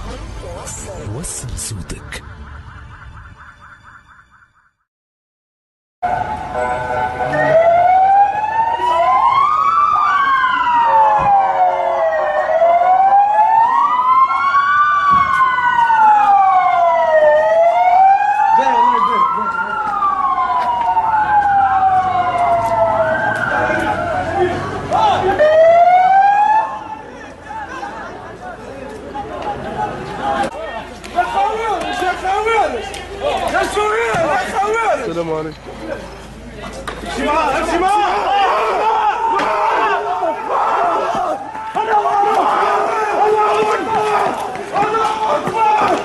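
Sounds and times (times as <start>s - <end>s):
emergency vehicle sirens wailing: 0.0s - 4.4s, 6.0s - 35.1s, 37.1s - 46.0s.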